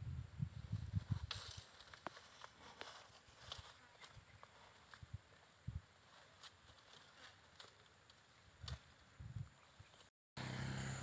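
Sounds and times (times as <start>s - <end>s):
hooves thumping on grass: 0.6s - 9.1s.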